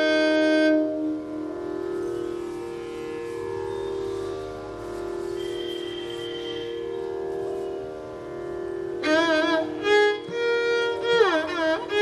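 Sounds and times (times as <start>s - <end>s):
steady drone: 0.0s - 12.0s
violin bowed note: 0.0s - 12.0s.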